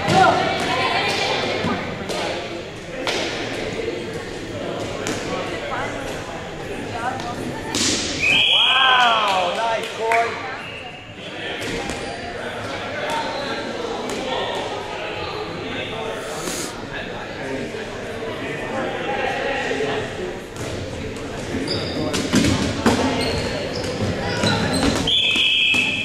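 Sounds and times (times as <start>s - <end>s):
echoing chatter: 0.0s - 26.0s
referee's whistle: 8.2s - 8.9s, 25.1s - 26.0s
loud shout: 8.5s - 9.6s.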